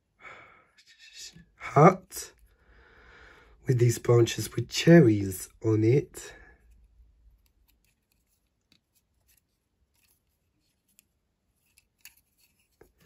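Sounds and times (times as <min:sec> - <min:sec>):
faint clicks of plastic toy handled: 0:06.4 - 0:13.0.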